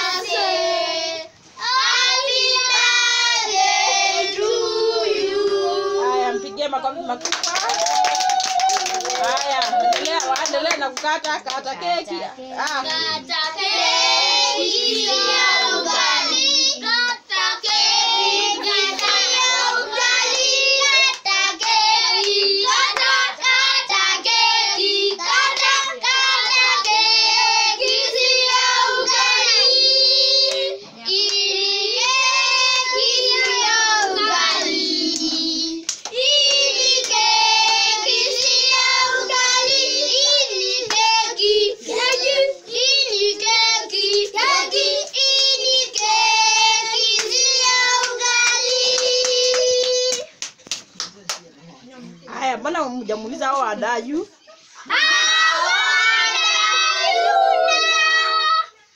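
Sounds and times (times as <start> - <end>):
children singing: 0.0 - 6.5, 13.0 - 50.3, 54.8 - 58.8
hand claps: 7.2 - 11.6, 33.4 - 37.8, 45.9 - 51.5.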